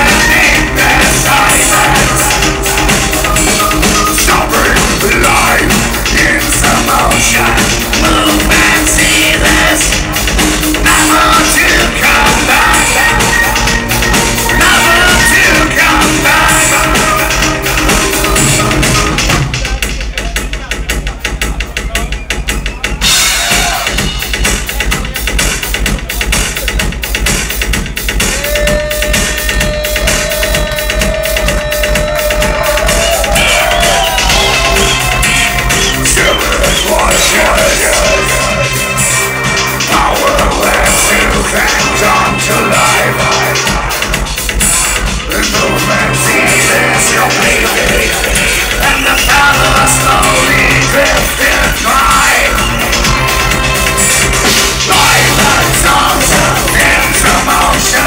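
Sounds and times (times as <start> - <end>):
band playing live with synths: 0.0 - 58.0
driving kick drum: 0.0 - 58.0.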